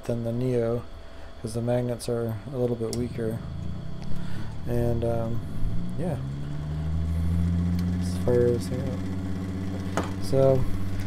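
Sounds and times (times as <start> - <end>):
low electrical motor hum: 0.0 - 11.0.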